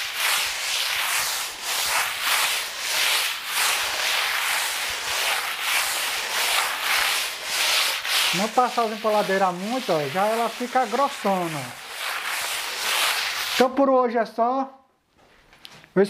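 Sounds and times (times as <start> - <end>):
hand float scraping cement: 0.0 - 13.8.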